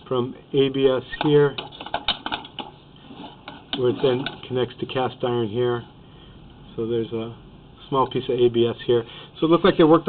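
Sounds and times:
camera cable and reel rattling: 0:01.6 - 0:02.8.

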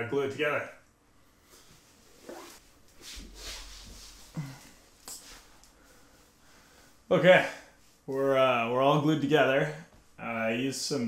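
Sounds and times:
rustling and handling noises: 0:01.4 - 0:06.4.

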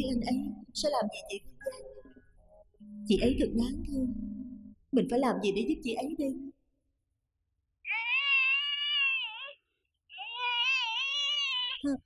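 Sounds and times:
baby crying: 0:07.8 - 0:11.9.

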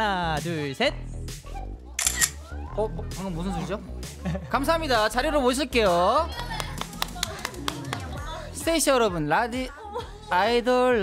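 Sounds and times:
quiet background music: 0:00.0 - 0:11.0
camera shutter click: 0:02.0 - 0:02.4.

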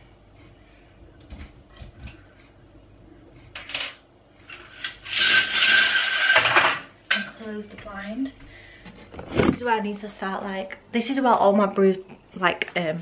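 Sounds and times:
venetian blind rasping whirr: 0:04.4 - 0:06.9.

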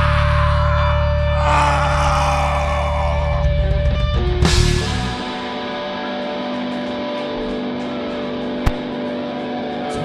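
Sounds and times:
sharp click: 0:08.6 - 0:09.0.

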